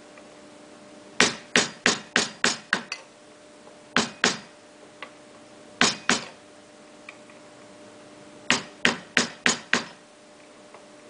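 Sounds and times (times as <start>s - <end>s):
hammer striking metal frame: 1.2s - 3.0s, 4.0s - 4.5s, 5.8s - 6.4s, 8.5s - 10.0s.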